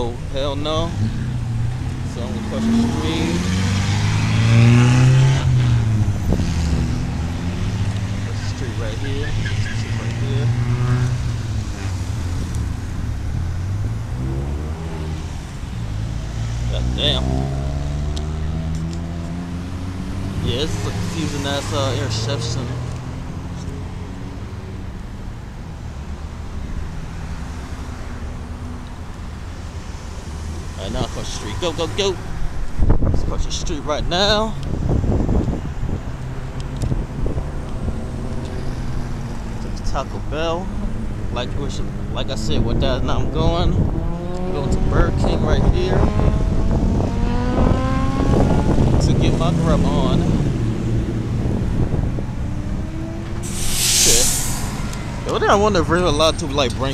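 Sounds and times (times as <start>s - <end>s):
car engines running: 0.0s - 56.9s
low rumble of traffic: 0.0s - 56.9s
vehicles passing close by: 0.0s - 56.9s.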